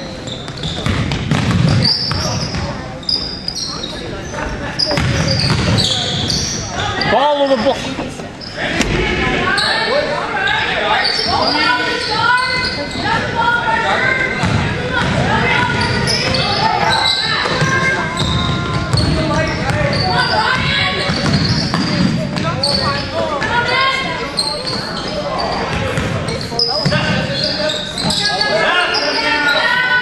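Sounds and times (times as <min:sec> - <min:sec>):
sneaker squeaks: 0:00.0 - 0:30.0
basketball bouncing on court: 0:00.4 - 0:02.8, 0:04.9 - 0:06.4, 0:14.4 - 0:16.5, 0:17.4 - 0:23.6.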